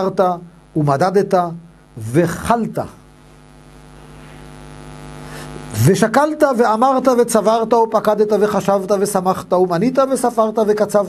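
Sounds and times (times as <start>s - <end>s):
man reading aloud: 0.0s - 3.0s, 5.8s - 11.0s
steady electrical hum: 0.0s - 11.0s.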